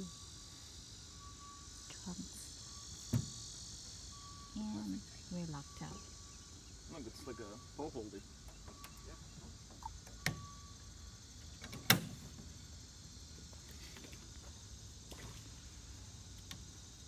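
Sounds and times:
insects buzzing: 0.0s - 17.0s.

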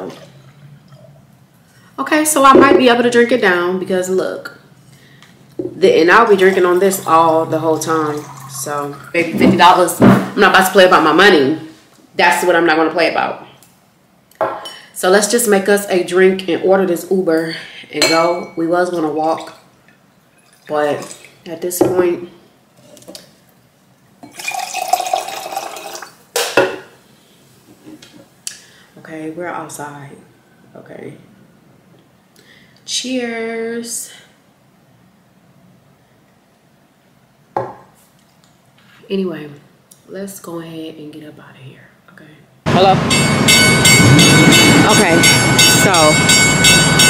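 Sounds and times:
steady high tone: 6.0s - 9.1s, 42.7s - 47.0s
liquid pouring into glass: 7.7s - 9.2s, 24.2s - 26.2s
glass set down knock: 37.6s - 37.9s
drawbridge warning bell ringing: 42.7s - 47.0s.

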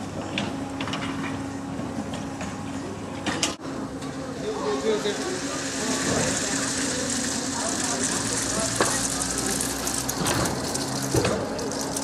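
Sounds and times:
mechanical hum: 0.0s - 12.0s.

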